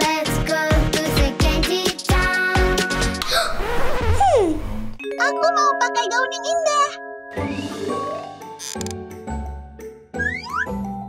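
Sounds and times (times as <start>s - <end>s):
pop backing track: 0.0s - 3.2s.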